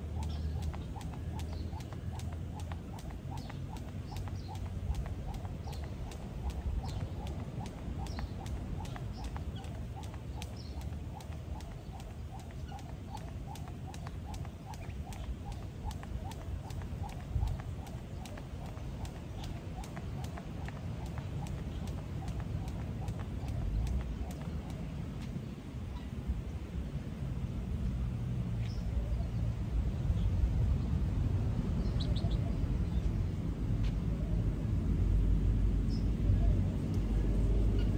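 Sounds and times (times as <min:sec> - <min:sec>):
skipping rope slapping paving: 0:00.0 - 0:25.4.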